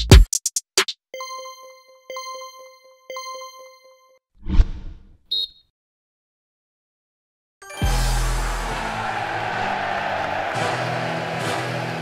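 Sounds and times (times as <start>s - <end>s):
bright electronic chime: 1.2s - 4.2s.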